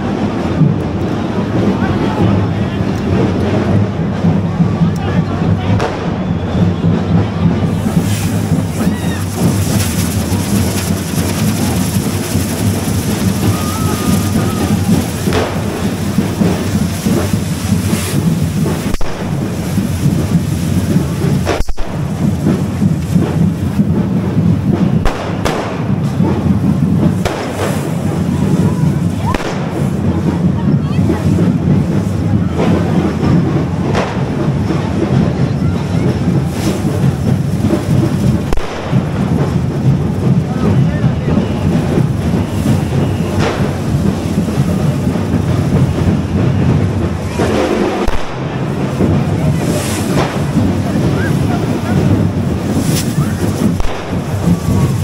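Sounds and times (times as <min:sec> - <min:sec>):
crowd voices: 0:00.0 - 0:55.0
firework bangs: 0:00.0 - 0:55.0
fireworks hissing and crackling: 0:00.0 - 0:55.0
low rumble: 0:00.0 - 0:55.0.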